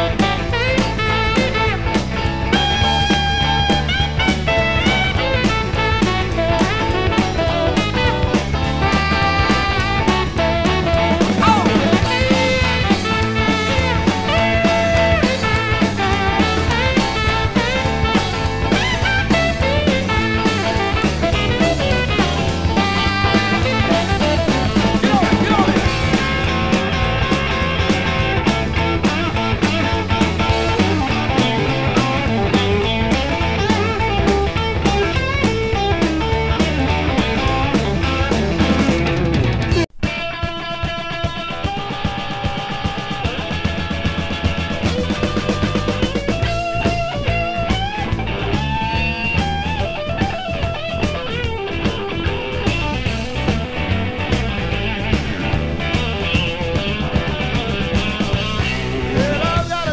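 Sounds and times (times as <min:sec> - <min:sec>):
bent guitar lead notes: 0:00.0 - 0:59.9
blues band playing: 0:00.0 - 0:59.9.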